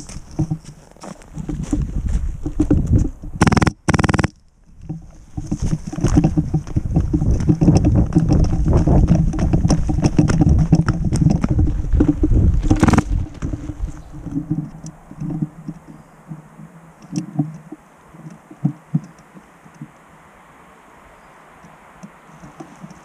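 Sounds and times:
loud bumps: 5.4 - 14.7
camera handling noise: 12.6 - 13.1.

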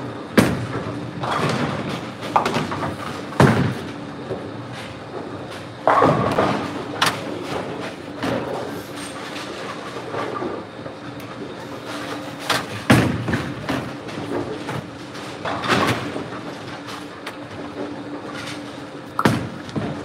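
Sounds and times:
bowling pins crashing: 0.4 - 4.0, 5.8 - 8.7, 12.6 - 16.6, 19.2 - 20.0
bowling balls rolling: 0.4 - 20.0.

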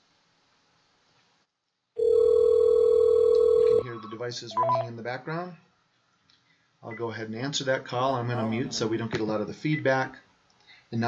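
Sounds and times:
telephone ringback tone: 2.0 - 3.9
person speaking: 3.8 - 5.6, 6.8 - 10.2.

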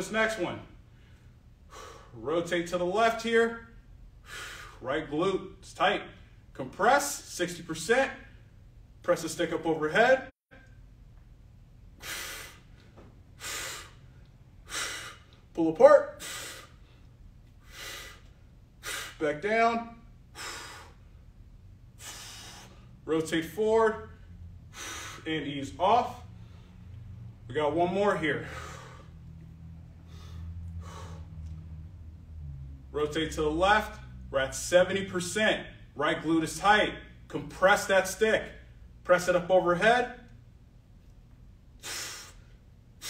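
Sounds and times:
steady low hum: 0.0 - 43.0
man breathing hard: 0.9 - 2.2, 4.2 - 4.8, 12.0 - 15.5, 16.1 - 19.2, 20.2 - 21.2, 21.9 - 23.0, 24.1 - 25.3, 26.1 - 27.0, 28.4 - 31.6, 41.8 - 43.0
man breathing softly: 22.0 - 23.0, 26.2 - 27.1, 28.4 - 29.4, 30.0 - 31.6.

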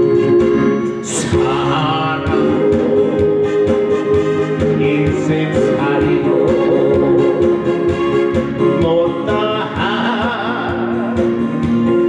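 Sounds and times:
backing track with steady beat: 0.0 - 12.0
man singing into microphone: 1.0 - 7.9, 8.6 - 12.0.

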